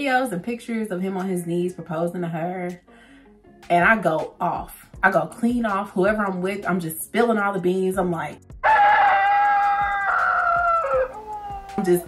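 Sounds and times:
woman shrieking: 0:08.7 - 0:12.0.

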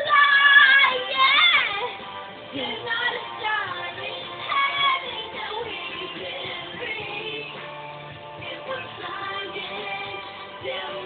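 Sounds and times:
girl singing high notes: 0:00.0 - 0:02.0
music: 0:00.0 - 0:11.0.

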